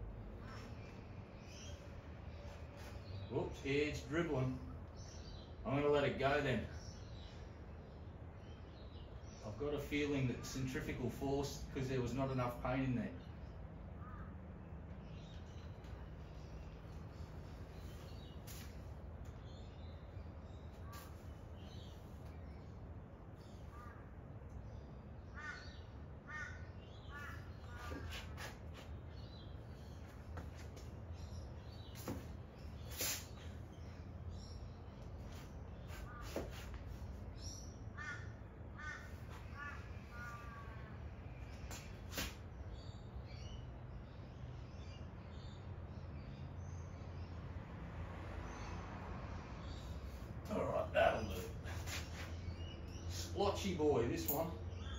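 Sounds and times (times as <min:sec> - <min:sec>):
small birds chirping: 0:00.0 - 0:47.5, 0:49.6 - 0:54.9
crows cawing: 0:14.0 - 0:14.4, 0:23.7 - 0:24.1, 0:25.3 - 0:28.1, 0:37.9 - 0:41.0.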